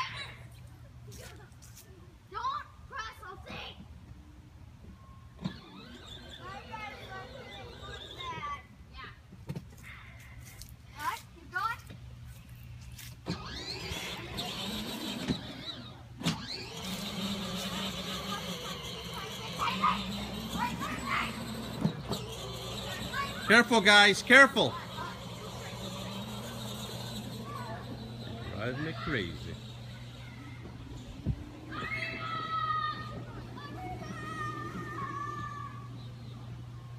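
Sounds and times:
toy car electric motor whining: 5.3 - 8.6, 13.2 - 36.6
children's voices: 5.6 - 9.2, 16.6 - 36.9.

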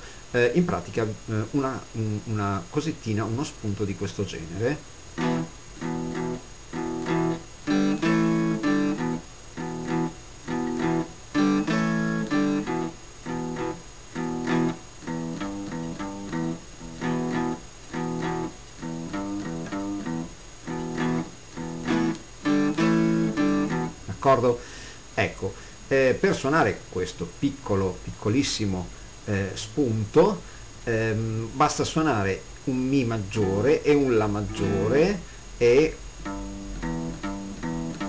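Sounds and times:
guitar blues riff: 4.5 - 24.4, 32.8 - 38.0.

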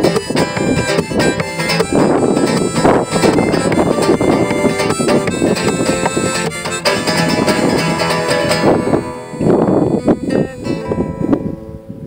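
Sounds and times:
classical guitar strummed and plucked: 0.0 - 12.0
harmonica chords: 0.0 - 12.0.

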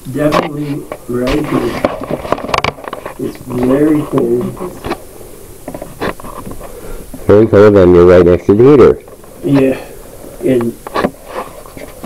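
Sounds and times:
room hiss: 0.0 - 12.0.

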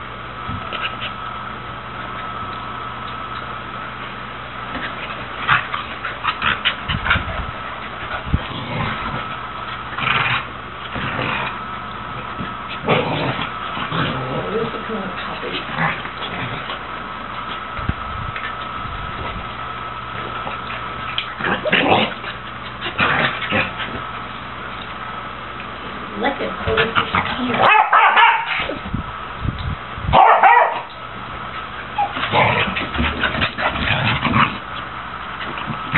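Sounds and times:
dogs scuffling: 31.2 - 35.9.

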